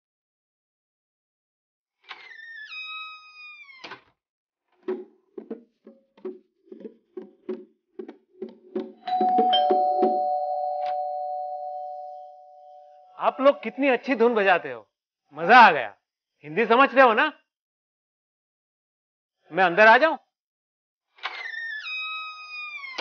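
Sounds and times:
bongo drums played by hand: 4.8 - 10.2
held two-note tone: 9.1 - 13.9.

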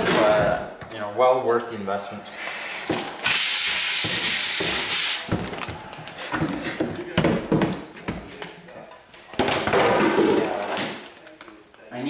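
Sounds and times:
hand brush scrubbing: 2.3 - 5.3.

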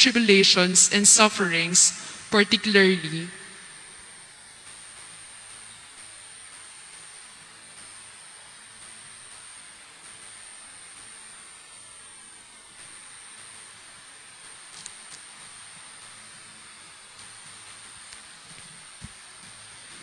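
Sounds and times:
high-pitched whine: 0.0 - 11.7
room noise hiss: 0.0 - 20.0.

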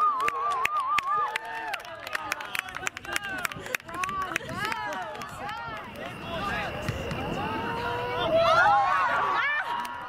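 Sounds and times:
people shouting and calling out: 0.0 - 10.0.

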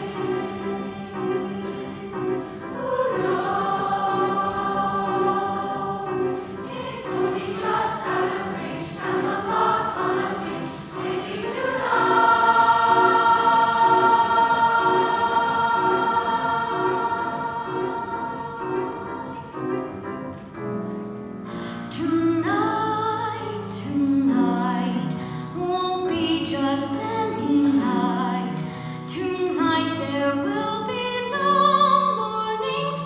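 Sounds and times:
choir singing: 0.0 - 20.3
piano accompaniment: 0.0 - 33.0.

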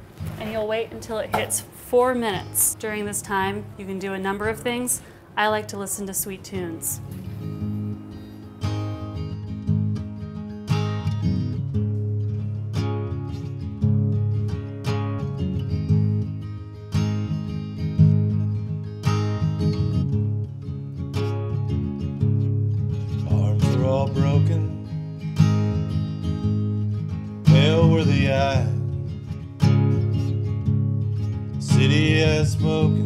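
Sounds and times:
acoustic guitar strumming: 0.0 - 33.0.

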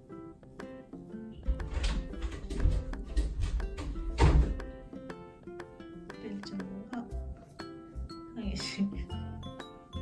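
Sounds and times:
background music: 0.0 - 10.0
door rattling and thumping: 1.4 - 4.6.

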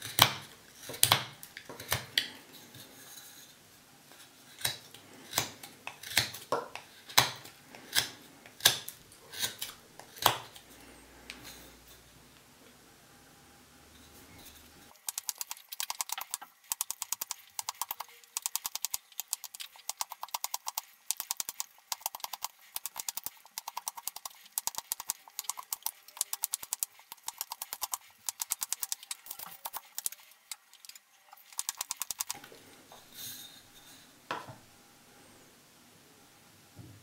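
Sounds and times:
knife carving wooden stick: 4.6 - 10.6, 14.4 - 32.5.

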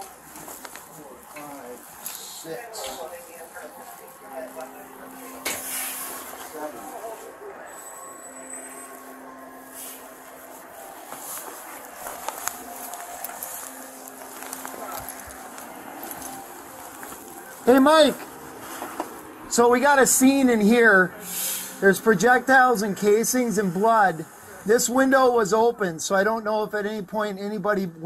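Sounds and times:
rustling and handling noise: 0.0 - 22.4.

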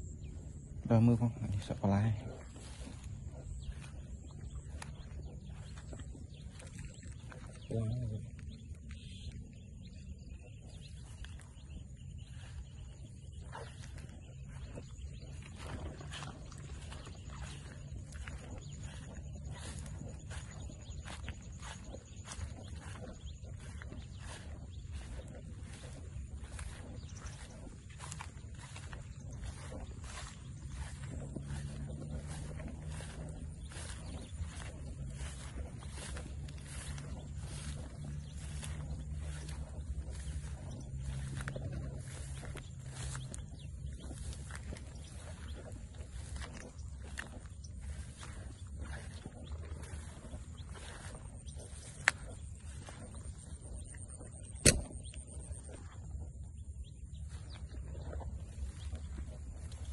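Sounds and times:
footsteps through wet grass: 0.0 - 59.9
low steady hum: 0.0 - 59.9
sharp clicks: 54.6 - 55.0.

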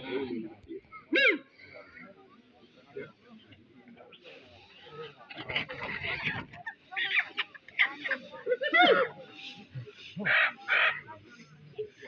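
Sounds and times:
people's voices: 0.0 - 12.0
chickens squawking: 5.3 - 11.2.

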